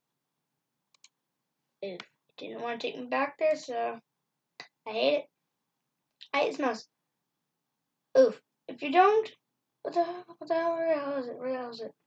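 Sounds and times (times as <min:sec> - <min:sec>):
computer mouse clicks: 0:00.9 - 0:01.2.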